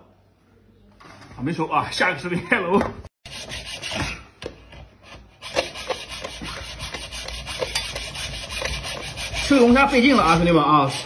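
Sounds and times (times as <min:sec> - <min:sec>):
hacksaw sawing through shell: 0:05.1 - 0:10.6.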